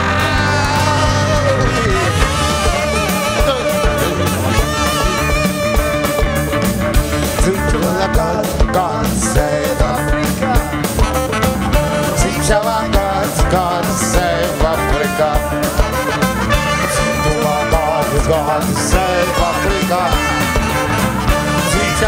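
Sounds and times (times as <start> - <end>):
band playing upbeat song: 0.0 - 22.0
guitar: 0.0 - 22.0
steady drum beat: 0.0 - 22.0.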